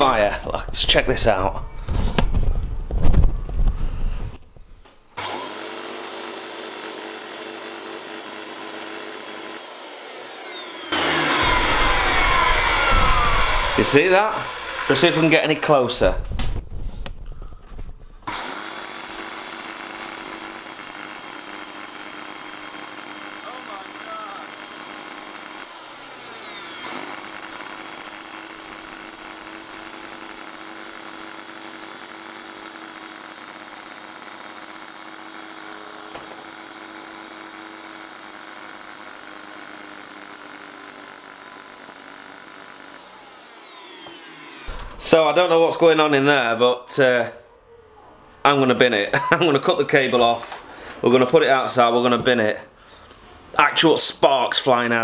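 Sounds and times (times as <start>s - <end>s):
vacuum cleaner motor whining: 5.2s - 16.7s, 17.4s - 45.6s.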